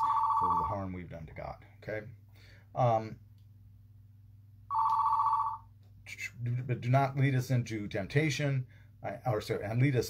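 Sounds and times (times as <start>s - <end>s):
telephone ringing: 0.0s - 0.8s, 4.7s - 5.7s.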